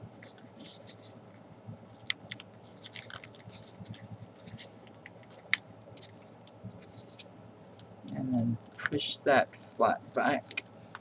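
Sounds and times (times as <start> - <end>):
soft paper crackles: 0.1 - 9.2, 10.0 - 11.0
paper rustling: 0.2 - 1.2, 1.9 - 7.9.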